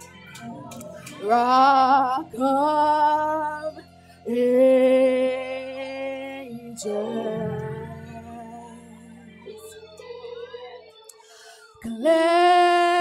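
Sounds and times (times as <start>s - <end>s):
low musical accompaniment: 0.0s - 13.0s
woman singing into a microphone: 0.0s - 13.0s.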